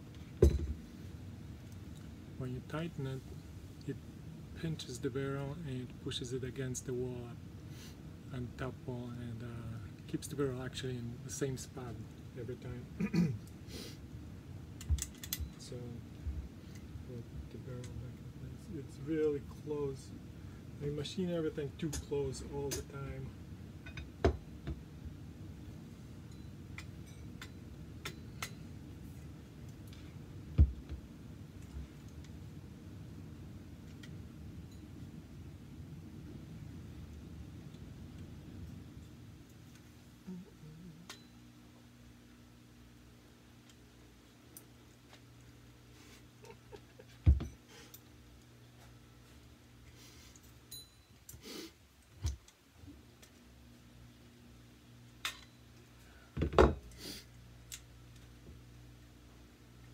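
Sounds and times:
metal barrel knocking on mat: 0:00.4 - 0:00.8.

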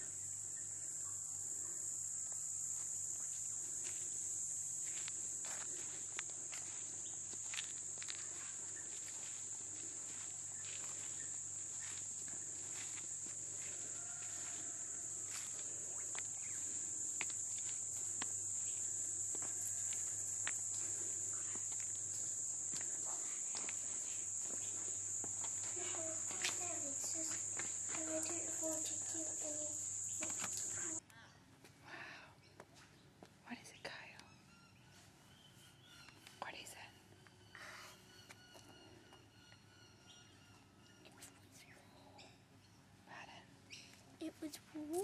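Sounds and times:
insects droning: 0:00.0 - 0:31.0, 0:33.4 - 0:45.0
footsteps on paved paths: 0:02.7 - 0:31.0.

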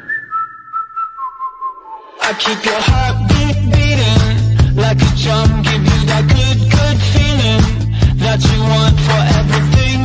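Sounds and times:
whistled tune: 0:00.0 - 0:02.4.

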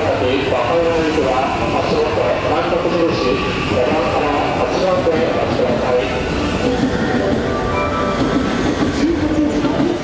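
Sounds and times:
electric train rumbling: 0:00.0 - 0:10.0.

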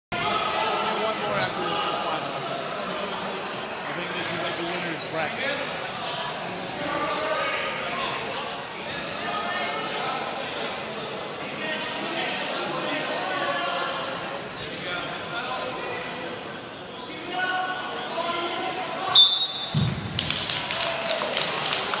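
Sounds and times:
referee's whistle blast: 0:19.1 - 0:20.0
thud: 0:19.7 - 0:20.2
hand claps: 0:20.1 - 0:22.0.

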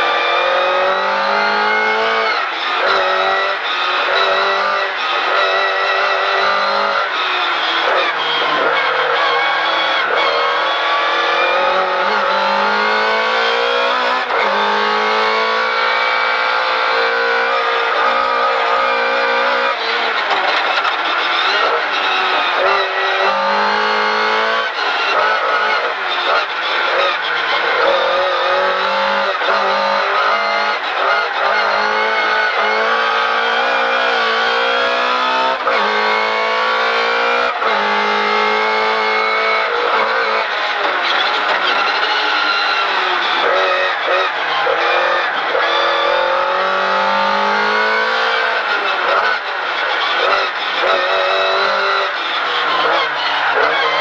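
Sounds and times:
race car engine revving through gears: 0:00.0 - 0:54.0.

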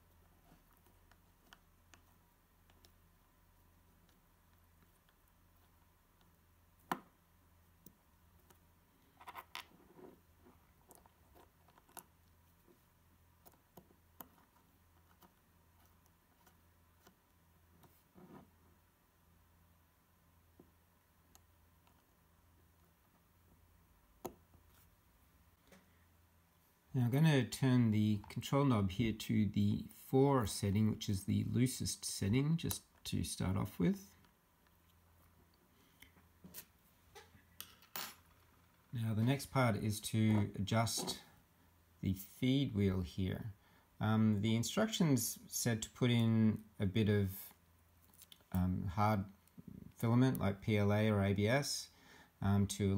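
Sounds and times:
low steady hum: 0:00.0 - 0:52.9.

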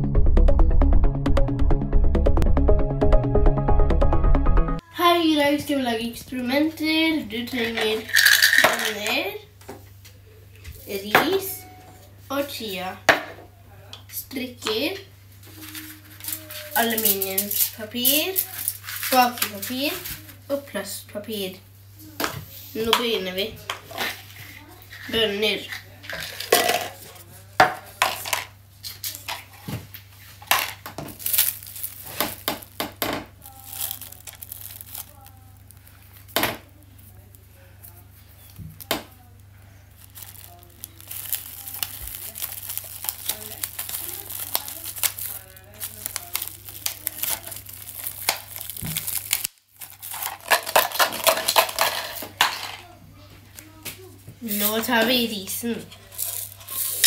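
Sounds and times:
cups clicking and knocking: 0:07.7 - 0:09.1, 0:50.1 - 0:52.8
plastic film crackling: 0:15.4 - 0:20.4, 0:28.8 - 0:52.9, 0:54.4 - 0:57.0.

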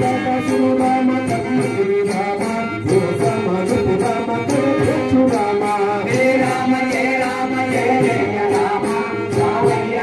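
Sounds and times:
jingling percussion beat: 0:00.0 - 0:10.0
devotional group chanting: 0:03.6 - 0:10.0.

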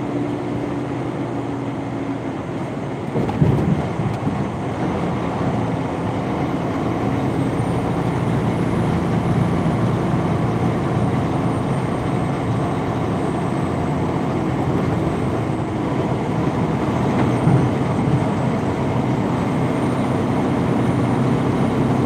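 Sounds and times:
truck cab engine and road noise: 0:00.0 - 0:22.0.

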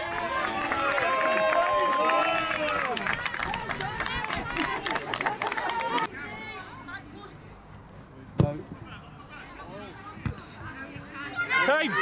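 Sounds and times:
players shouting and calling out: 0:08.9 - 0:12.0.

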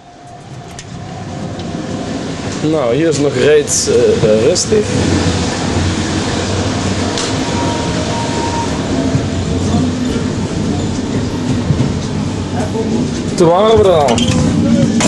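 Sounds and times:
train running rumble and hiss: 0:00.0 - 0:15.0.

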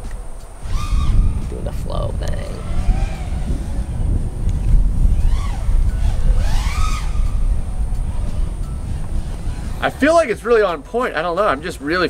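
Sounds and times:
wind rumble on microphone: 0:00.0 - 0:12.0
quadcopter motor whine: 0:00.1 - 0:01.6, 0:02.4 - 0:10.2.

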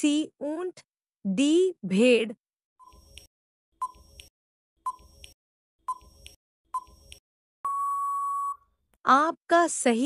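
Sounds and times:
high electronic beep: 0:07.6 - 0:08.6.

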